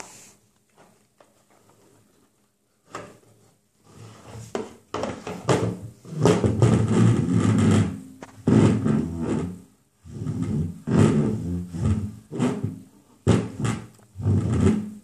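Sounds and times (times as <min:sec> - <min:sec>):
plastic stool scraping on wood: 0:02.9 - 0:15.0.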